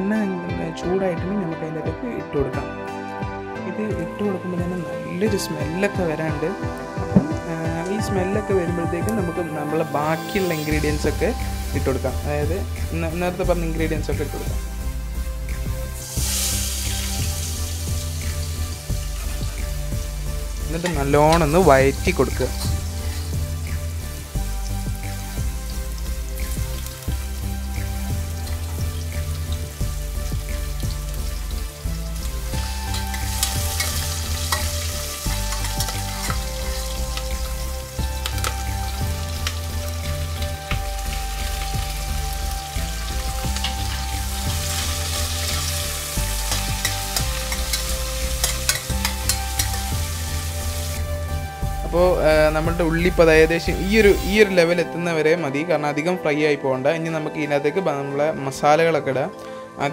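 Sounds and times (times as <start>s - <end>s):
food sizzling in hot oil: 6.5s - 52.0s, 52.6s - 54.6s.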